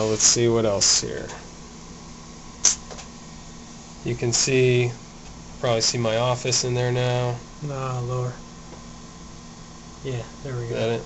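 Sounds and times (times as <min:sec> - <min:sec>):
low room hum: 0:00.0 - 0:11.0
short sharp hiss: 0:02.6 - 0:03.0.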